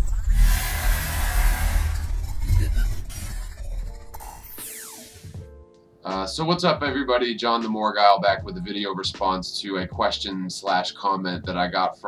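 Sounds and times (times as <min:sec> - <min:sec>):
deep bass rumble: 0:00.0 - 0:04.6
rushing hissing noise: 0:00.0 - 0:05.4.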